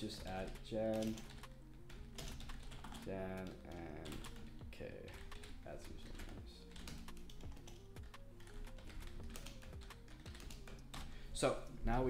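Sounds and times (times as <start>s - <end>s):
keyboard typing: 0.0s - 11.8s
quiet background music: 0.0s - 12.0s.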